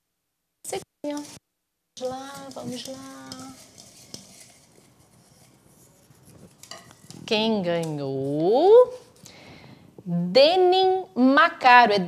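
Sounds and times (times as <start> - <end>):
paper slips stirred in a cup: 2.0 - 7.8.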